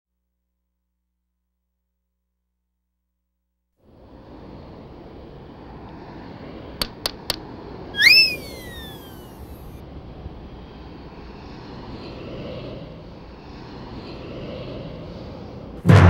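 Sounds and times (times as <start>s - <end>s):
low city hum: 3.8s - 16.0s
loud gliding whistle: 8.0s - 9.7s.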